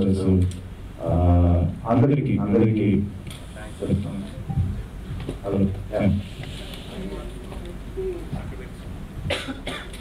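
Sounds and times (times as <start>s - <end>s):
man coughing: 9.3s - 10.0s.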